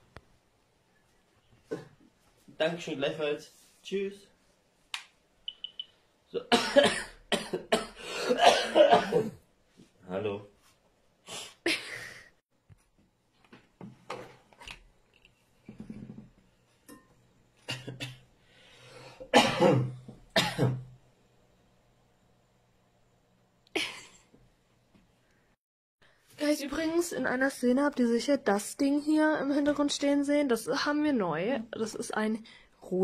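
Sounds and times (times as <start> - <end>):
person coughing: 6.5 - 9.4, 19.2 - 20.9, 23.8 - 24.2.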